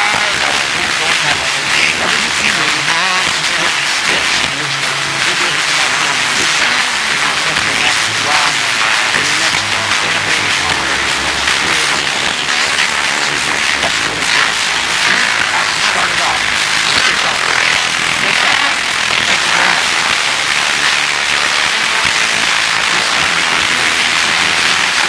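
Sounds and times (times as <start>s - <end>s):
loud steady hiss: 0.0s - 25.0s
muffled man's voice: 0.0s - 25.0s.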